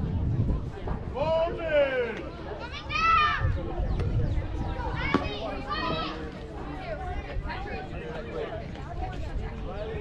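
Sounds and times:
girls calling out and chattering: 2.2 - 8.2.

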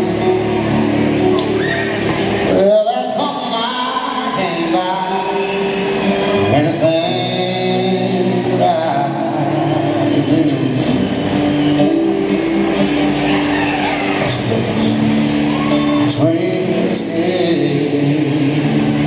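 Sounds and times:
acoustic guitar strummed: 0.0 - 19.0
person singing: 2.5 - 12.6, 13.7 - 19.0.

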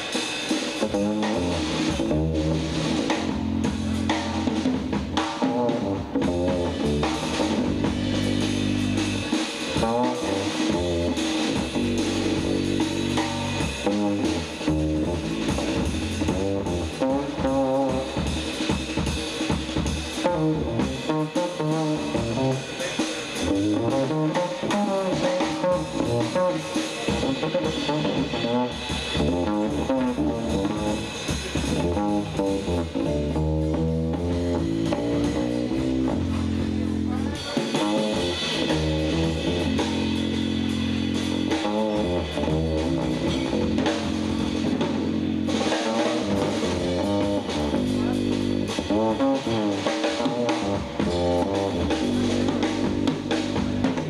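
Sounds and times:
drum kit: 0.0 - 54.0
jazz guitar: 0.0 - 54.0
walking upright bass: 0.0 - 54.0.

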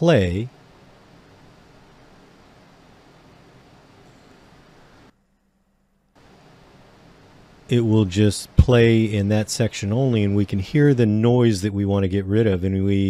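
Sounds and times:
air conditioner hum: 0.0 - 13.0.

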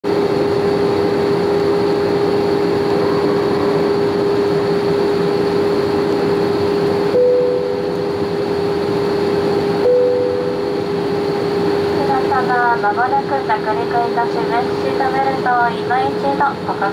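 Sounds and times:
airliner cabin roar: 0.0 - 16.9
brief high steady tone: 7.1 - 8.1, 9.8 - 10.8.

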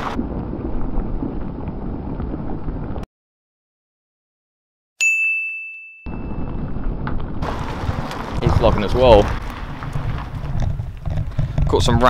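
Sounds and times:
wind noise on microphone: 0.0 - 3.0, 6.1 - 12.0
bright ding sound effect: 5.0 - 6.6.

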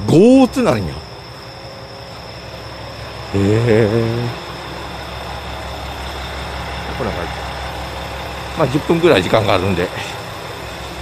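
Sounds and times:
diesel train idling: 0.0 - 11.0
insects chirring: 0.0 - 11.0.

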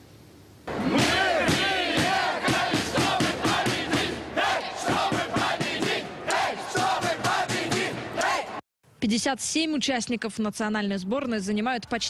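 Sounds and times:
crowd chanting and shouting: 0.7 - 8.6.

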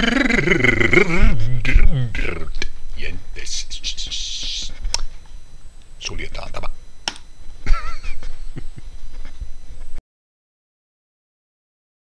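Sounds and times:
person speaking: 0.0 - 4.9, 6.0 - 6.8.

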